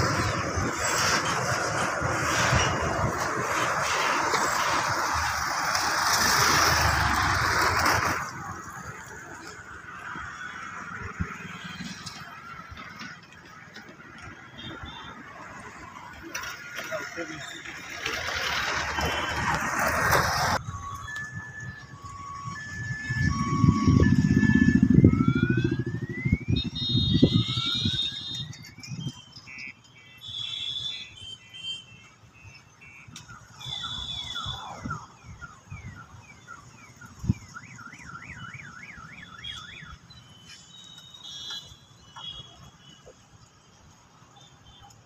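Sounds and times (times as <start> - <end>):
electronic alarm siren: 0.0 - 45.0.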